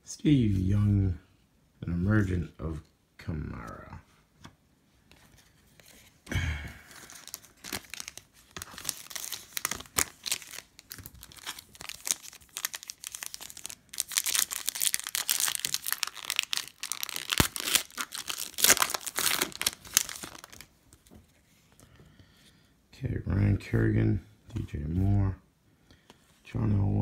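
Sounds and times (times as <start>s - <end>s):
foil wrapper crinkling and tearing: 6.8s - 20.7s.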